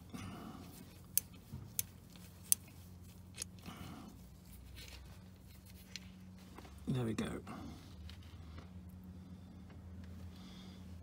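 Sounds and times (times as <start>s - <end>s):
low steady hum: 0.0s - 11.0s
small metallic clicks: 0.9s - 3.7s.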